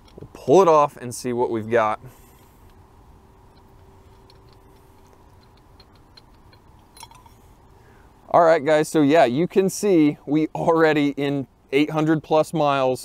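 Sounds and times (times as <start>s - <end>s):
faint steady hum: 0.0s - 13.0s
light scraping: 3.4s - 7.6s
small metallic clicks: 3.5s - 7.5s.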